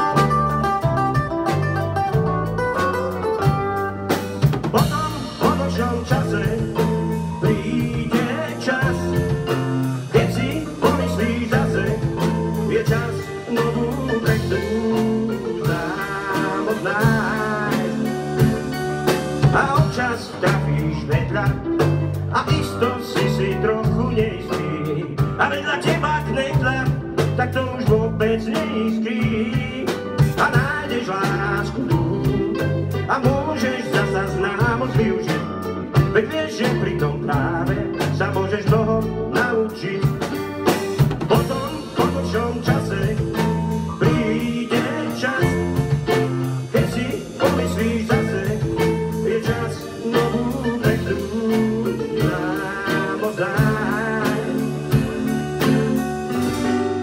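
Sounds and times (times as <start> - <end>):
acoustic guitars: 0.0 - 57.0
drum kit: 0.0 - 57.0
electric bass guitar: 0.0 - 57.0.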